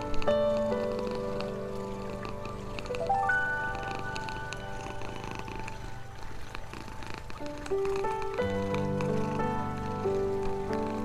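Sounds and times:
calm music with held notes: 0:00.0 - 0:11.0
cat purring: 0:00.0 - 0:11.0.

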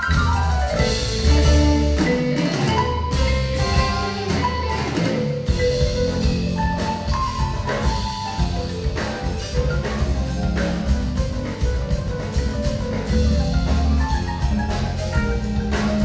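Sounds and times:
bass notes: 0:00.0 - 0:16.0
drum kit: 0:00.0 - 0:16.0
electric guitars: 0:00.0 - 0:16.0
keyboards: 0:00.0 - 0:16.0
marimba: 0:00.0 - 0:16.0.

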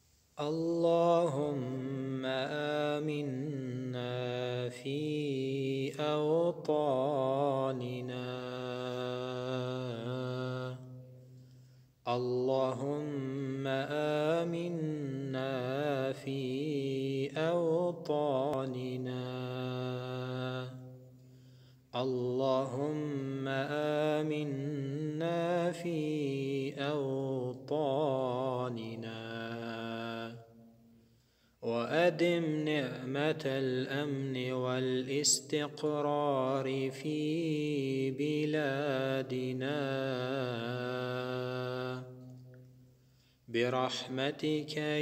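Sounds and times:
man chanting: 0:00.4 - 0:10.9, 0:12.1 - 0:20.8, 0:22.0 - 0:30.5, 0:31.6 - 0:42.2, 0:43.5 - 0:45.0.

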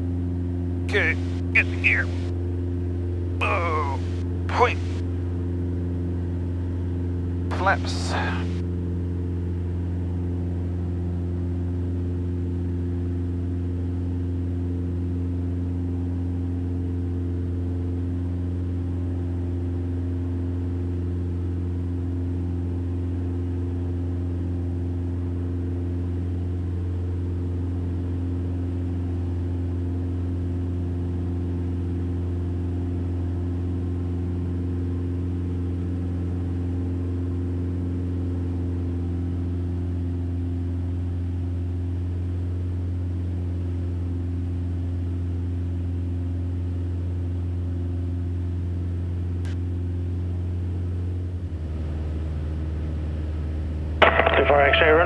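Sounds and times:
aircraft engine and propeller droning: 0:00.0 - 0:55.0.

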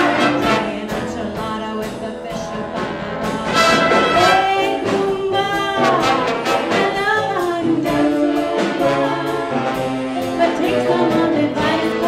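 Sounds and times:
trumpets and trombones: 0:00.0 - 0:01.0, 0:02.8 - 0:05.0, 0:05.6 - 0:12.0
big band playing mambo: 0:00.0 - 0:12.0.

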